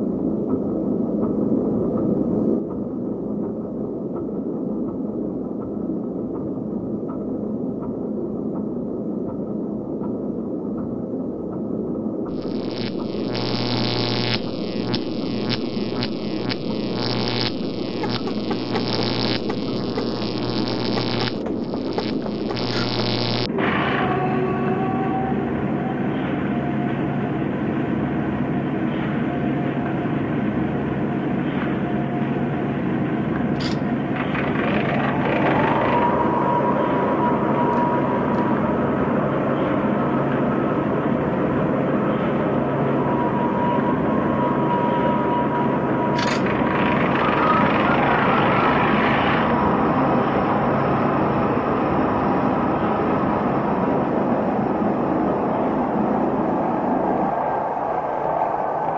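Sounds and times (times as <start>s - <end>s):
higher tone: 12.3s - 23.5s
low hum: 12.3s - 23.6s
rumbling drone: 12.3s - 23.6s.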